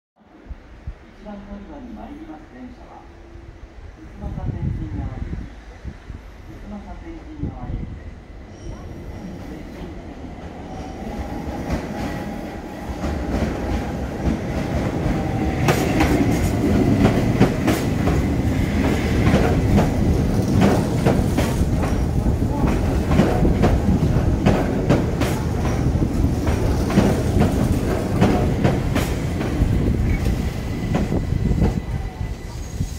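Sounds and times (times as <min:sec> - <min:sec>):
train wheels clattering: 0:12.9 - 0:32.0.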